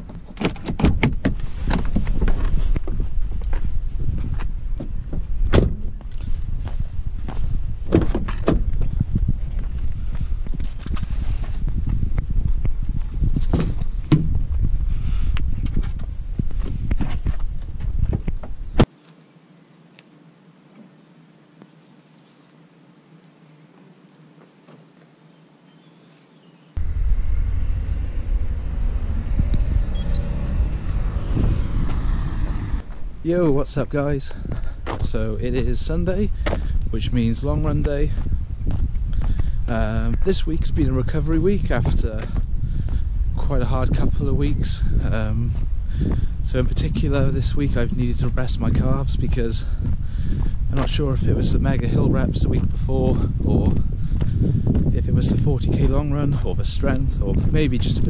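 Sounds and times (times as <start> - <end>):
low rumble on microphone: 0.8 - 18.9, 26.8 - 58.0.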